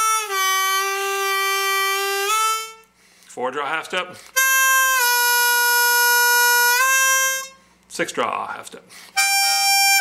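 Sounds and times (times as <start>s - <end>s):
harmonica bent note: 0.0s - 2.9s, 4.3s - 7.7s, 9.1s - 10.0s.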